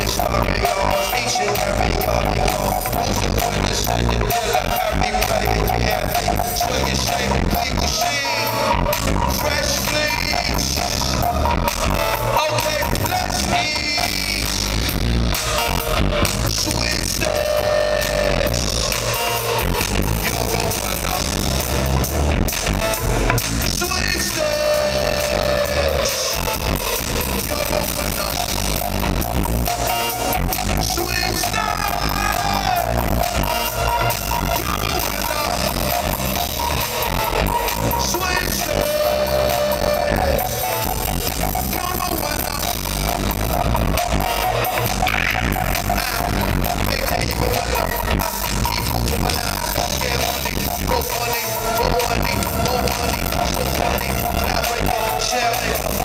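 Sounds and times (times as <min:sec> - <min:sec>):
electric guitars: 0:00.0 - 0:56.0
heavy bass beat: 0:00.0 - 0:56.0
live band playing: 0:00.0 - 0:56.0.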